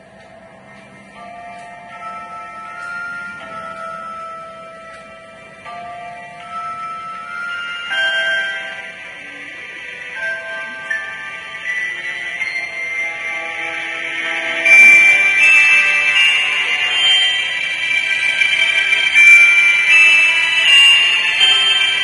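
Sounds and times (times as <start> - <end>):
background music with high held notes: 0.0 - 22.0.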